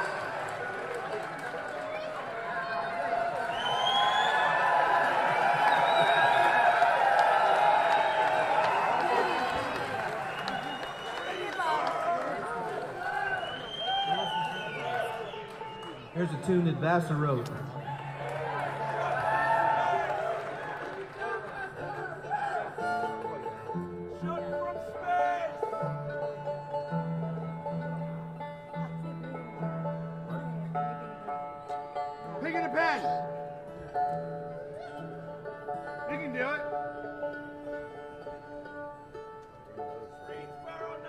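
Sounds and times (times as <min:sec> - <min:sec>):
bluegrass string band playing: 0:04.6 - 0:41.0.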